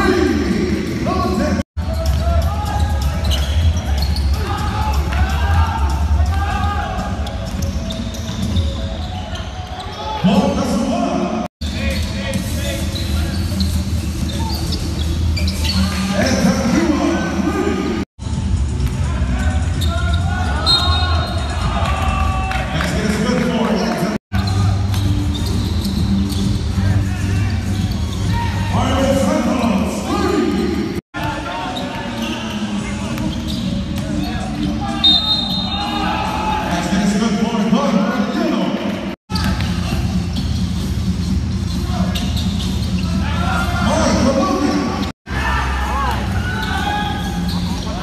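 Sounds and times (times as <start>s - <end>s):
sneakers squeaking on hardwood: 1.8s - 5.2s, 6.8s - 10.3s, 12.8s - 16.2s, 24.4s - 28.7s, 31.6s - 36.7s, 39.3s - 43.3s, 46.4s - 48.0s
loud shout: 4.4s - 7.2s, 19.9s - 22.9s, 34.8s - 37.0s, 45.3s - 48.0s.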